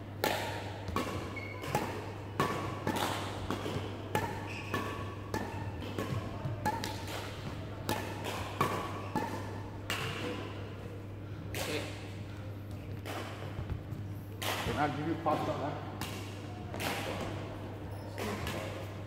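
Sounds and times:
badminton rackets hitting shuttlecocks: 0.2s - 10.6s, 14.3s - 17.4s
shoes squeaking on court floor: 1.1s - 2.0s, 4.2s - 5.8s, 17.8s - 18.7s.

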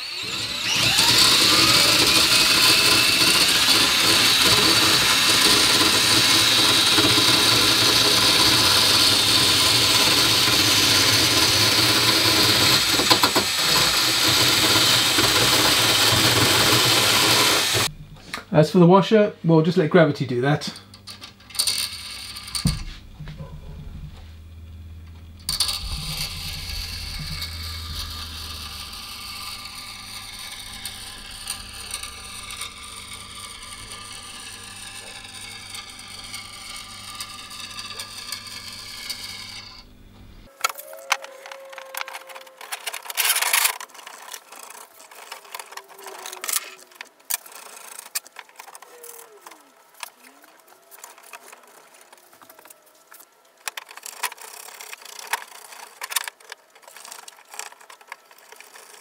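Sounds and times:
power drill spinning: 0.0s - 18.4s, 20.7s - 23.5s, 25.0s - 59.0s.

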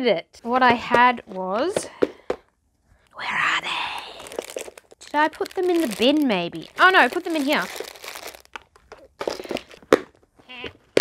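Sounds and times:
plastic bags crinkling: 3.4s - 10.3s.

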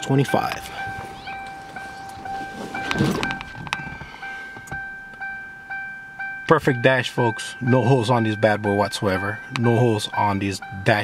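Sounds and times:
car warning chime dinging: 0.0s - 11.0s.

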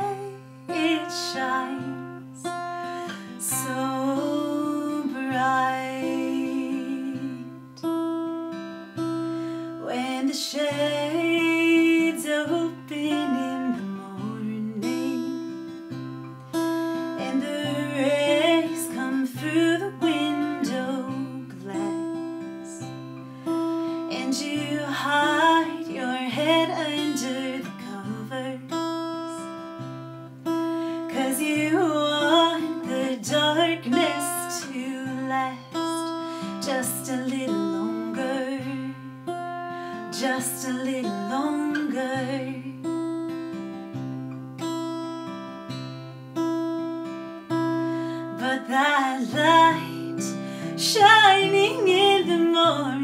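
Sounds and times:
woman singing: 0.0s - 9.0s, 9.6s - 29.9s, 30.5s - 43.7s, 47.4s - 53.0s
acoustic guitar strumming: 0.0s - 53.0s.

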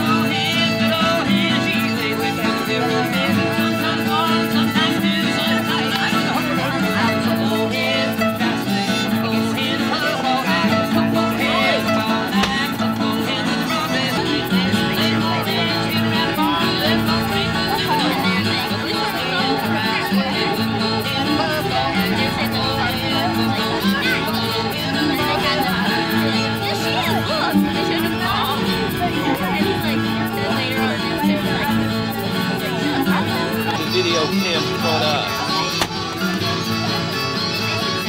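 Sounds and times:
acoustic guitar: 0.0s - 38.0s
fiddle playing a tune: 0.0s - 38.0s.

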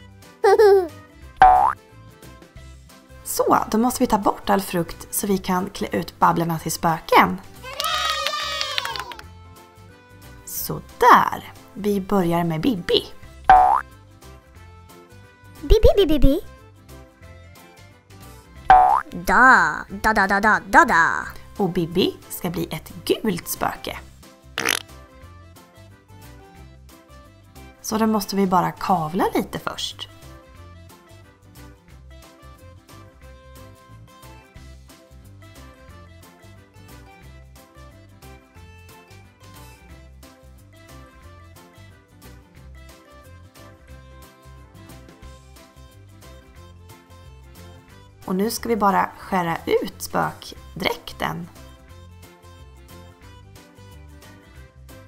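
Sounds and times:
cheerful children's music: 0.0s - 55.0s
play dough squelch: 24.6s - 24.8s.

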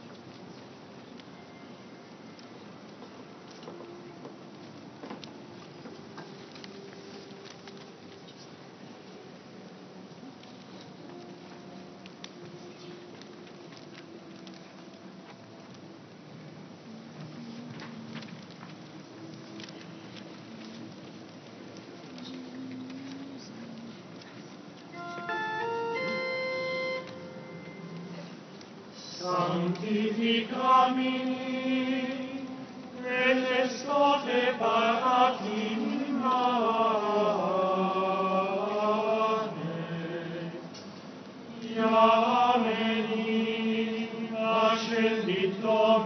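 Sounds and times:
faint steady hum: 0.0s - 46.0s
pipe organ chords: 25.0s - 27.9s.

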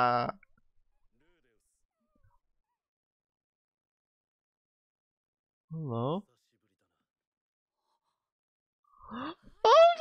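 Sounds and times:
faint cartoon voice: 9.0s - 10.0s.

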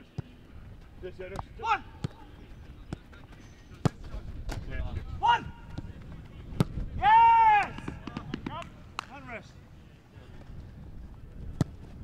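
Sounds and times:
loud held shout: 7.0s - 7.9s
people shouting: 7.0s - 8.0s.

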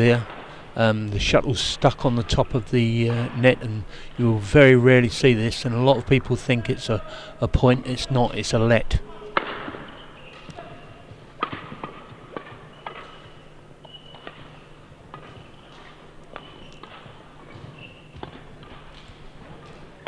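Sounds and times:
shoes squeaking on court floor: 9.1s - 20.0s
racket hitting shuttlecock: 9.2s - 20.0s.

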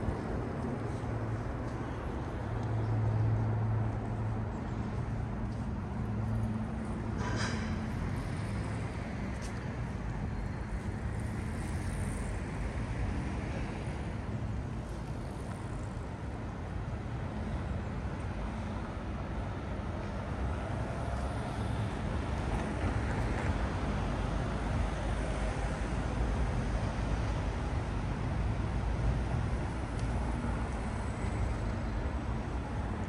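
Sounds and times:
low rumble of passing vehicles: 0.0s - 33.0s.

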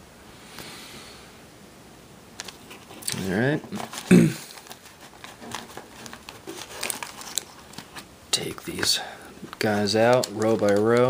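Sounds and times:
wax paper packs crinkling: 2.4s - 11.0s.

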